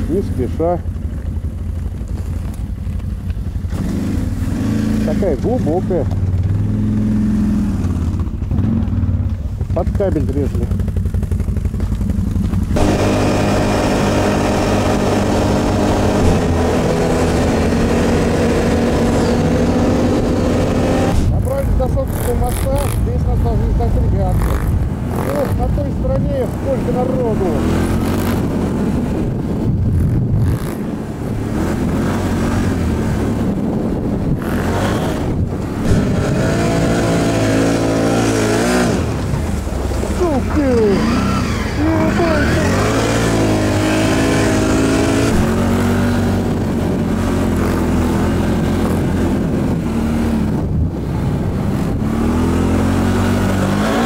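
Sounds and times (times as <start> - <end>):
atv engine revving: 0.0 - 54.0.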